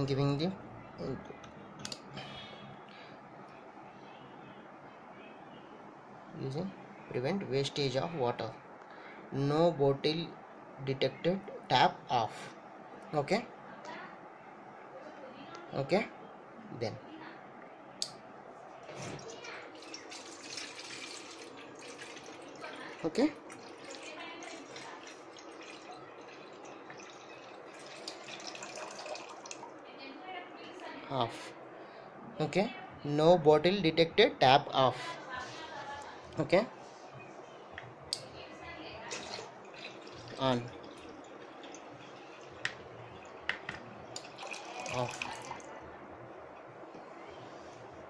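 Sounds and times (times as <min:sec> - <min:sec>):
water splashing into steel bowl: 0:19.1 - 0:29.7, 0:39.1 - 0:45.7
water dripping into steel vessel: 0:23.5 - 0:29.7.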